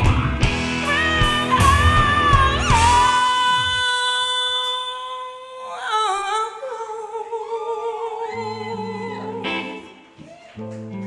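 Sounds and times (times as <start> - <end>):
woman singing into microphone: 0.8 - 10.0.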